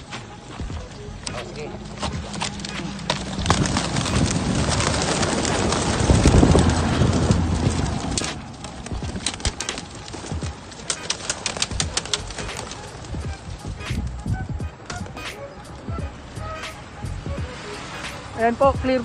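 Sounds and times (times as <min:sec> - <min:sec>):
pigeon wings flapping: 0:00.0 - 0:18.9.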